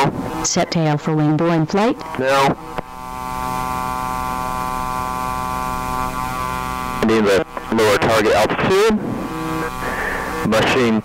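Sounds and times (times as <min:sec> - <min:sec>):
drone engine and propeller droning: 0:00.0 - 0:11.0.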